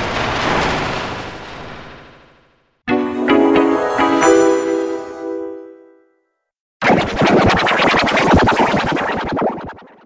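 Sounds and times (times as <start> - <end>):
stuttering scratch-like music effect: 6.8 - 10.0.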